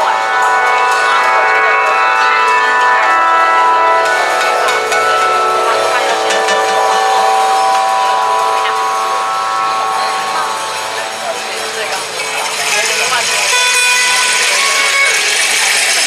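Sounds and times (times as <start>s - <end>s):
sustained chord: 0.0s - 16.0s.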